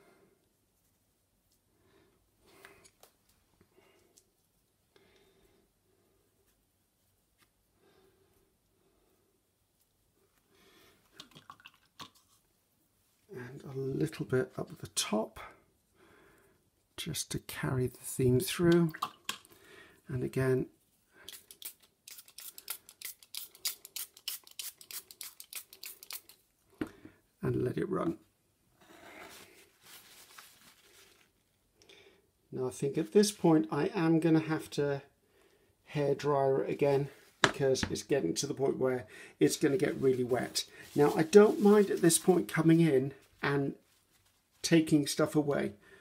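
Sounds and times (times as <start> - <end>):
spray bottle spritzing: 21.3 - 26.4
paintbrush dabbing and scraping: 39.5 - 42.6.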